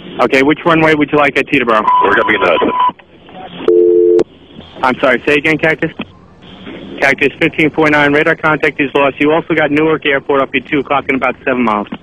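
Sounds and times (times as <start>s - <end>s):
narrow-band radio hiss: 0.0s - 3.7s, 4.3s - 12.0s
two-pitch telephone tone: 1.8s - 3.0s, 3.7s - 4.3s.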